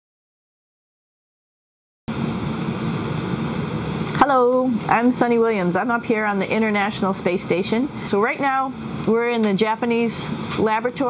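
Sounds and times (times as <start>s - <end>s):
equipment and ventilation hum: 2.1s - 11.0s.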